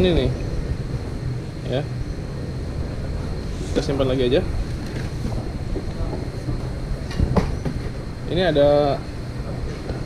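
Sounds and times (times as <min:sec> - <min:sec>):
steady low rumble: 0:00.0 - 0:10.0.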